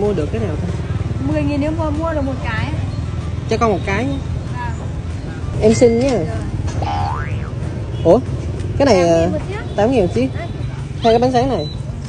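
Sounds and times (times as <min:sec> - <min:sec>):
cartoon boing sound effect: 0:06.8 - 0:07.6.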